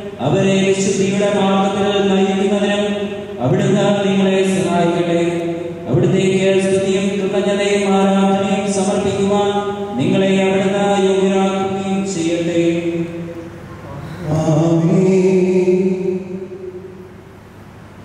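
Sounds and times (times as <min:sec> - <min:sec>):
priest chanting: 0:00.0 - 0:17.0.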